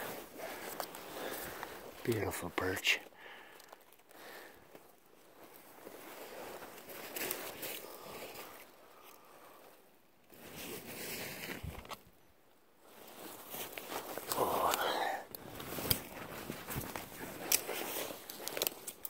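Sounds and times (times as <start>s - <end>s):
clothing and brush rustling: 4.7s - 8.8s, 12.8s - 14.3s, 15.4s - 19.0s
footsteps crunching through snow: 5.2s - 8.7s.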